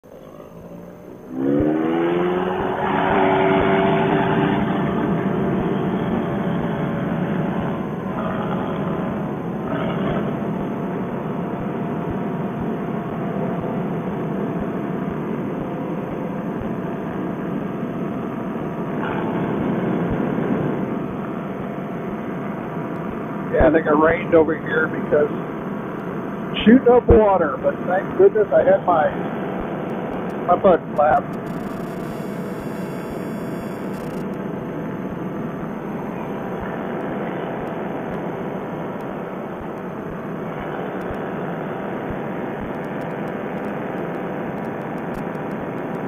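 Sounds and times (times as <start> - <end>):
paramotor engine and propeller: 0.1 - 46.0.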